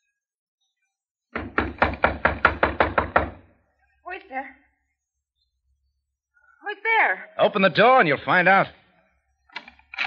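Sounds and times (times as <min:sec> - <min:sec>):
knocking on a door: 0:01.3 - 0:03.5.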